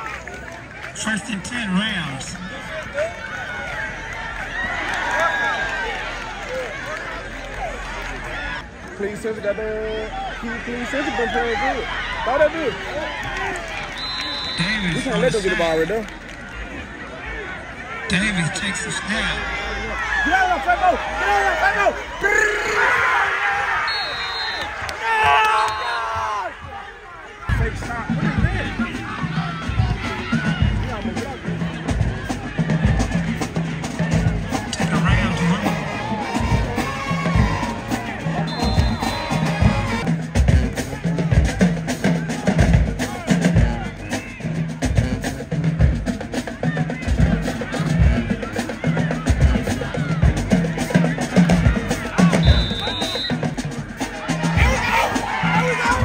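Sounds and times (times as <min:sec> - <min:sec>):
crowd chatter: 0:00.0 - 0:56.0
drums beating with bass drum: 0:27.5 - 0:56.0.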